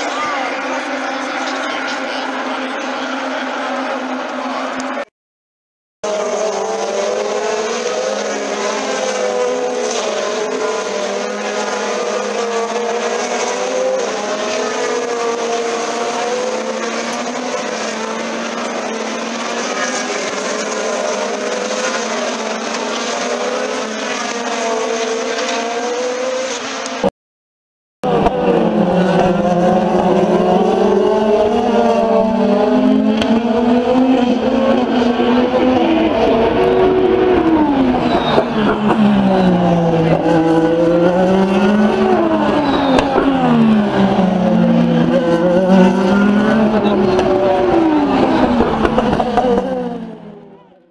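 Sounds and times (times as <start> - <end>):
race car engines passing: 0.0 - 5.1, 6.0 - 27.1, 28.0 - 50.9.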